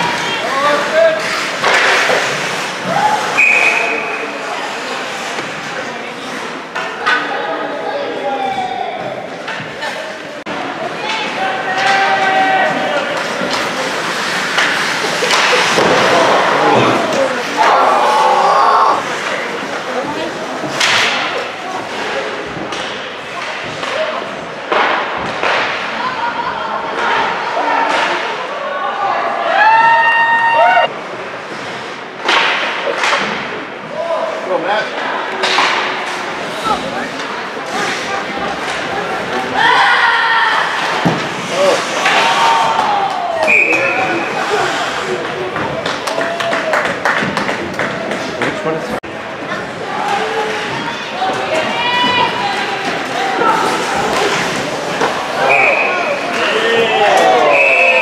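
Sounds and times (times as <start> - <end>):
pucks and sticks hitting boards: 0.0 - 4.2, 10.8 - 26.2, 31.5 - 34.0, 35.0 - 57.7
players shouting: 11.0 - 19.3, 49.8 - 58.0.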